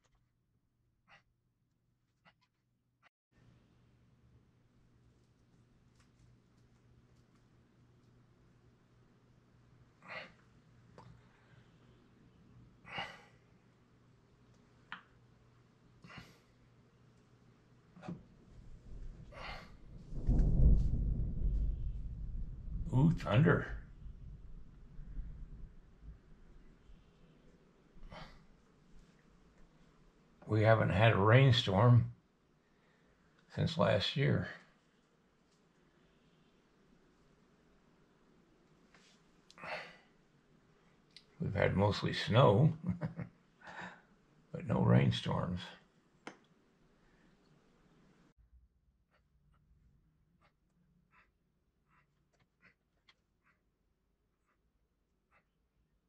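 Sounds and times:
thunder rumbling: 0:18.5 - 0:26.7.

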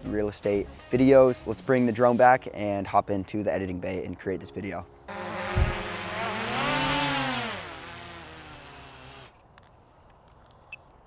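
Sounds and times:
drone propellers whining: 0:05.1 - 0:09.3.

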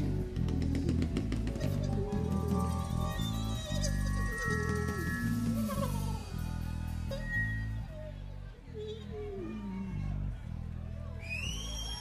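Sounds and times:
live funk band playing: 0:00.0 - 0:08.2
bass line: 0:00.0 - 0:12.0
sliding wavering melody: 0:02.1 - 0:08.4.

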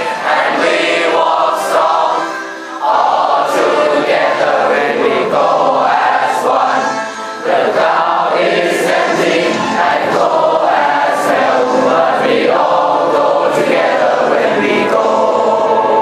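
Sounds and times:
teenage choir singing: 0:00.0 - 0:16.0.

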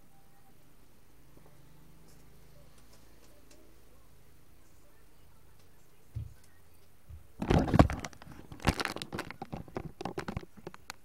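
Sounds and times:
low steady hum: 0:00.0 - 0:11.0
faint irregular clicks: 0:07.9 - 0:11.0.

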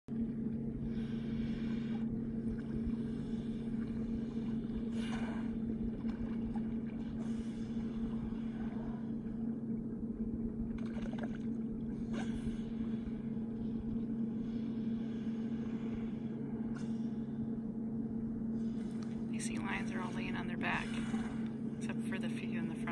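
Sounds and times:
boat motor humming: 0:00.1 - 0:22.9.

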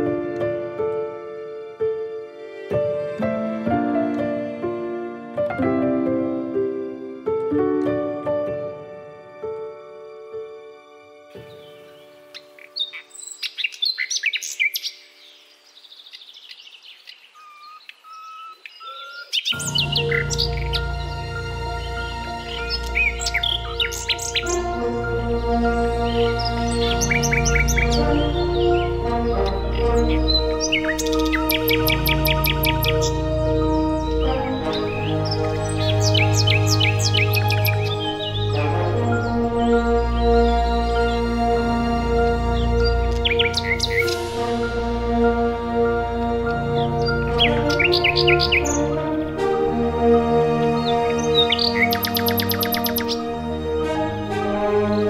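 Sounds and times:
soft ambient music: 0:00.0 - 0:15.9, 0:18.8 - 0:55.0
nightingale singing: 0:11.4 - 0:49.4, 0:50.5 - 0:53.7.

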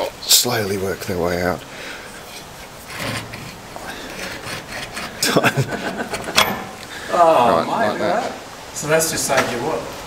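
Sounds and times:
quiet rubber rubbing: 0:02.1 - 0:06.8
laughter: 0:05.2 - 0:06.5.

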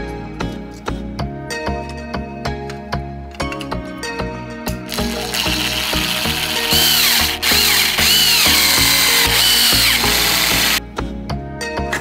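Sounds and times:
background music with steady beat: 0:00.0 - 0:12.0
electric screwdriver motor whine: 0:04.9 - 0:10.8.

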